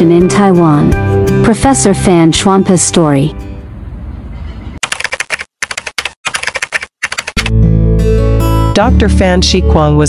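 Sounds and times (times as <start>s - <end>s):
keyboard typing clicks: 4.8s - 7.5s.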